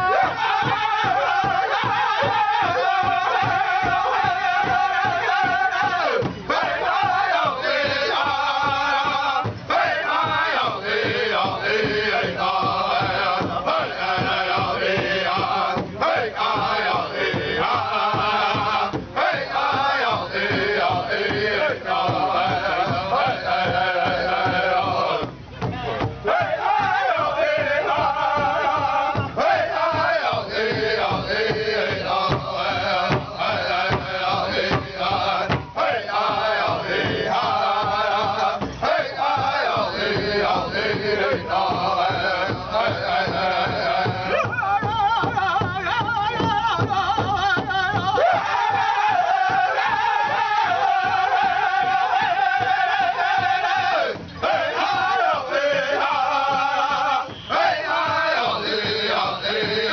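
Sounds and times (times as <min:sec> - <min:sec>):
group singing a chant: 0:00.0 - 0:59.9
large drum beating: 0:00.0 - 0:59.9.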